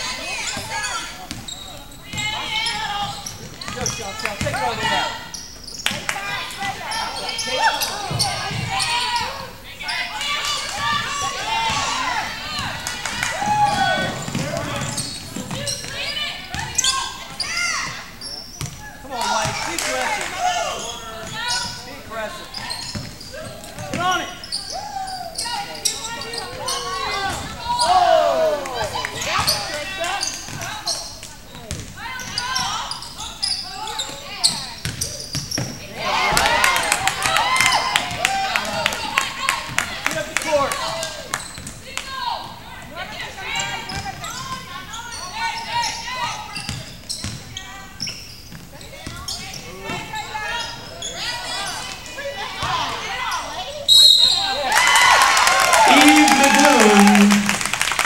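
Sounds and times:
indistinct shouts: 26.3 - 29.4, 54.3 - 57.8.

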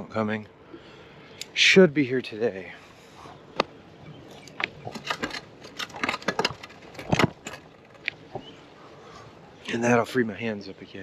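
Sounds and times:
clicks and rattles: 4.3 - 8.5.

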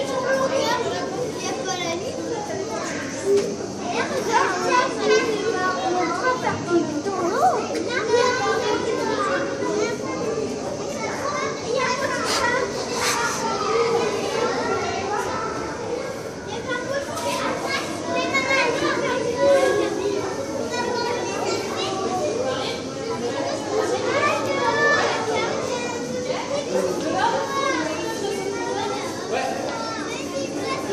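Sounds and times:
children chattering: 0.0 - 30.9.

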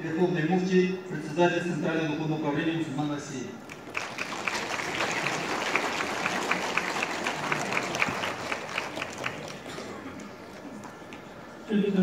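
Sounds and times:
audience applauding: 3.7 - 11.3.

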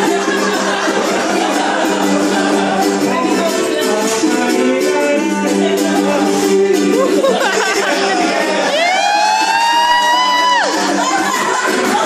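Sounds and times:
dance music: 0.0 - 12.0
person whooping: 6.9 - 12.0.

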